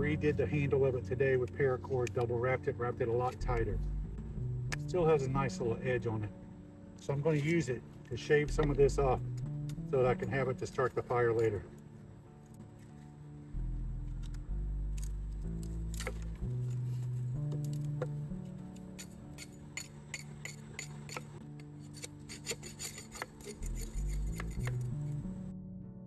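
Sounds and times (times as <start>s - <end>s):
background music: 0.0s - 26.0s
axe scraping wood: 15.0s - 25.3s.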